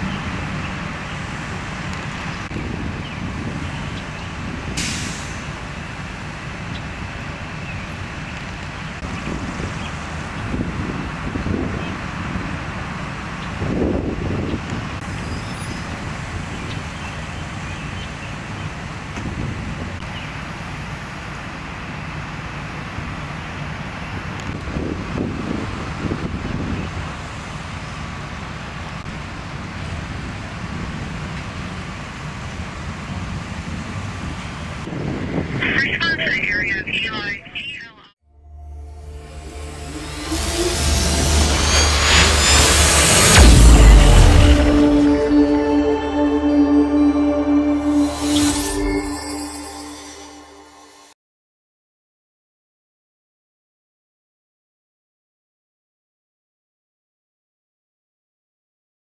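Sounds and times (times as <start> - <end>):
fire truck engines rumbling: 0.0 - 38.1.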